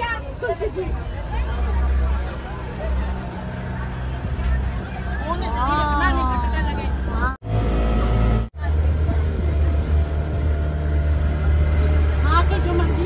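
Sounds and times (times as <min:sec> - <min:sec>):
outboard motor droning: 0:01.4 - 0:13.0.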